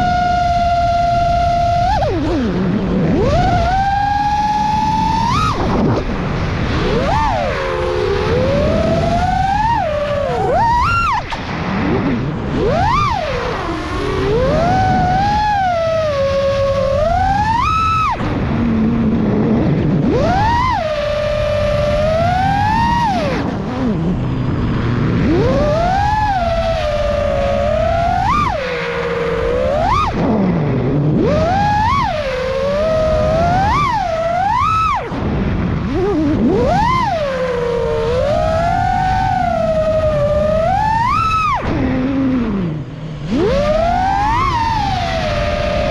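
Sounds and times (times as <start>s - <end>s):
drone motors whining: 0.0s - 45.9s
prop wash and wind rush: 0.0s - 45.9s.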